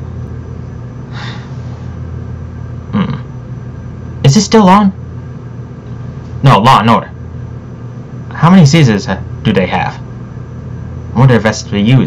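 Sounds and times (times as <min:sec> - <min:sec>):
low hum: 0:00.0 - 0:12.0
soft breath-like hiss: 0:01.1 - 0:02.0
man's voice murmuring: 0:02.9 - 0:03.3.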